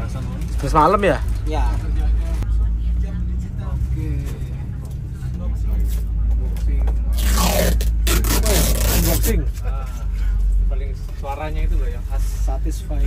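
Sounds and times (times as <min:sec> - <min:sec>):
diesel bus engine rumbling: 0:00.0 - 0:13.0.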